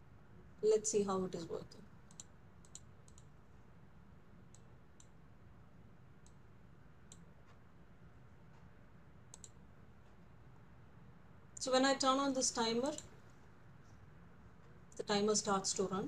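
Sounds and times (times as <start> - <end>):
computer mouse clicks: 2.1 - 3.3, 4.5 - 5.2, 6.2 - 6.4, 7.1 - 7.6, 9.3 - 9.6.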